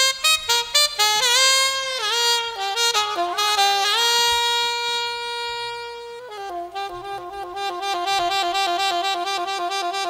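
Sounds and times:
saxophone long note: 0.0s - 10.0s.

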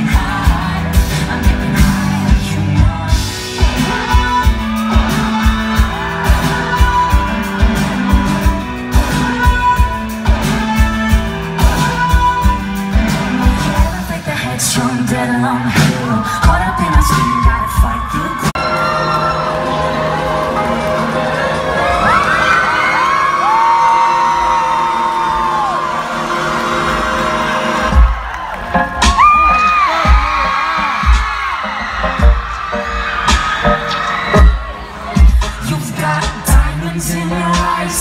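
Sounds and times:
live electro-pop band: 0.0s - 38.0s
crowd whooping: 4.2s - 8.1s, 15.7s - 20.8s, 21.6s - 36.3s
kick drum: 30.1s - 31.4s.

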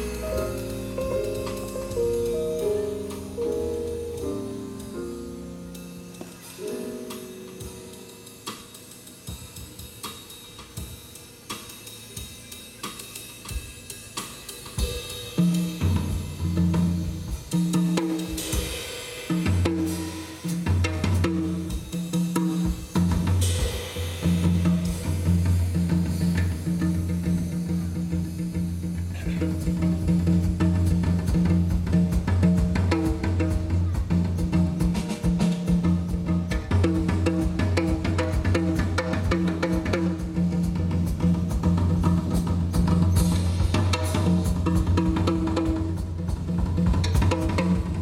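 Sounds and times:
jazz drum kit playing: 0.0s - 48.0s.

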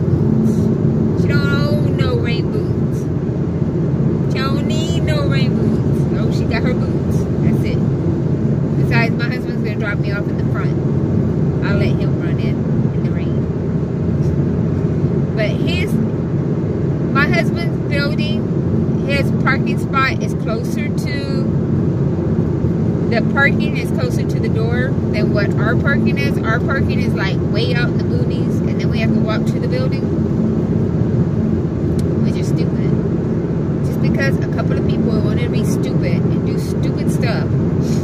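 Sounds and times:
car road and engine noise: 0.0s - 38.0s.

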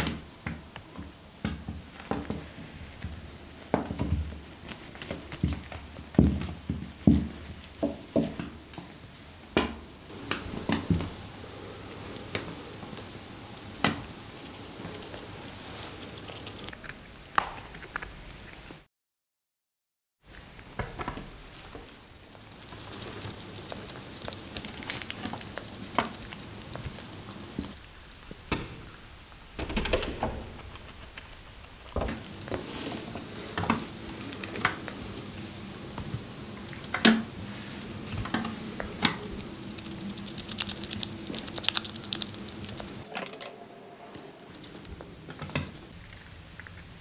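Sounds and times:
chipmunk nibbling: 10.1s - 17.0s, 22.2s - 27.8s, 32.1s - 46.9s.

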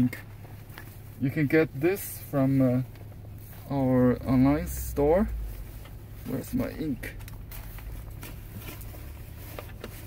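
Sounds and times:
low car cabin hum: 0.0s - 10.0s.

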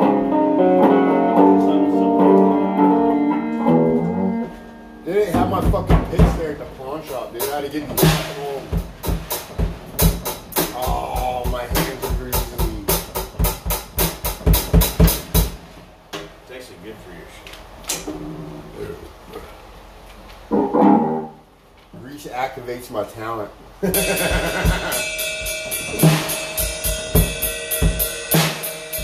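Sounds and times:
electric guitar: 0.0s - 5.0s, 20.5s - 21.4s
drum kit fast hits: 5.2s - 15.6s, 23.9s - 29.0s
kick drum: 5.4s - 6.5s, 8.7s - 15.5s.

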